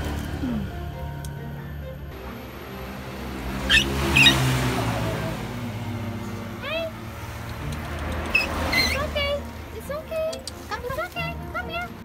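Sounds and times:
puppy squealing: 3.6s - 4.6s, 8.3s - 9.2s.

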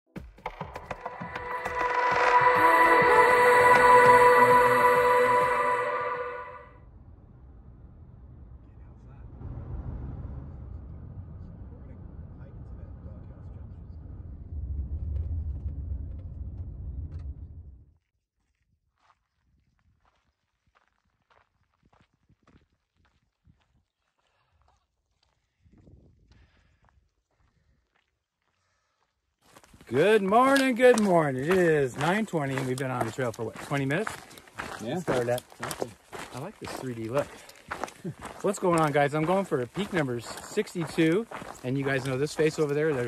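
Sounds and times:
footsteps on dirt road: 0.2s - 6.6s, 18.4s - 43.0s
electronic intro music: 0.5s - 6.7s.

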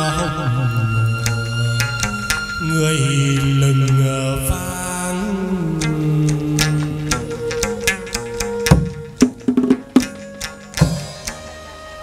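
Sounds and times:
voice chanting long notes: 0.0s - 12.0s.

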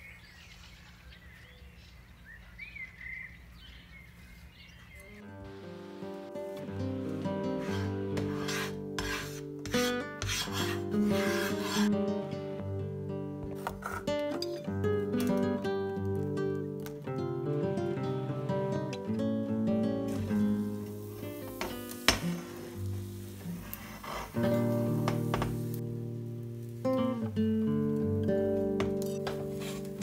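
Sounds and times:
acoustic guitar music: 5.0s - 30.0s
spatula scraping a frying pan: 7.5s - 12.0s, 13.6s - 14.1s, 21.6s - 25.7s, 29.0s - 30.0s.

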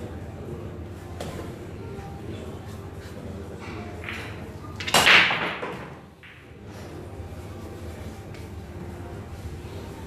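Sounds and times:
pool balls clattering: 3.7s - 6.7s
cue ball cracking into rack: 4.0s - 6.5s.

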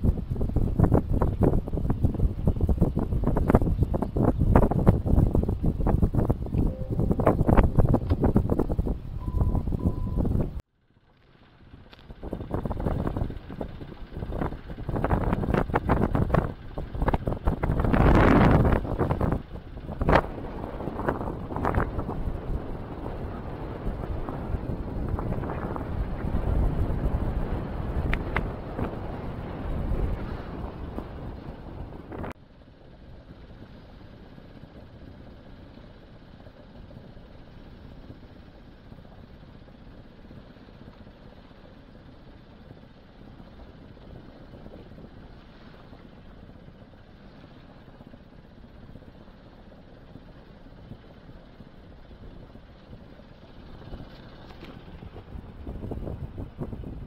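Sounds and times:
wind buffeting microphone: 0.0s - 10.6s, 11.8s - 32.4s, 33.2s - 57.0s.

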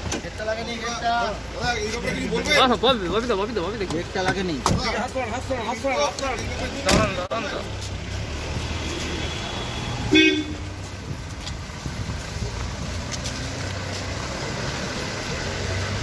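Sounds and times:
vehicle engine rumbling: 0.0s - 16.0s
car horn toot: 8.8s - 10.8s.

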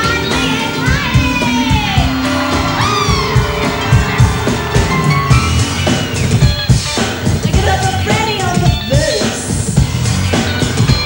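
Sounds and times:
keyboard lines: 0.0s - 8.8s
crowd cheering: 0.0s - 9.2s
live band music: 0.0s - 11.0s.

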